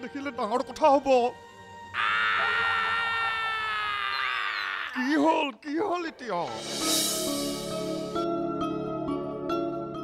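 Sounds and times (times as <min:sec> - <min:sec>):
man crying out: 0:01.9 - 0:05.4.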